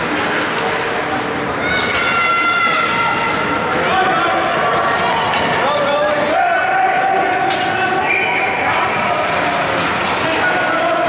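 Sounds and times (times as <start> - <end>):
arena crowd hubbub: 0.0 - 11.0
people shouting and calling: 1.5 - 11.0.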